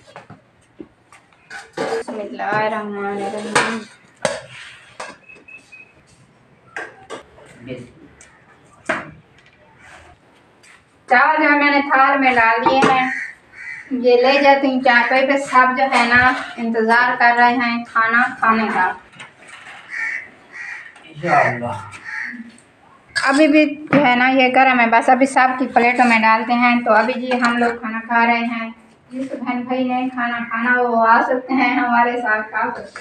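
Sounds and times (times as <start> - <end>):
bird calling: 13.0 - 14.0, 19.8 - 23.1.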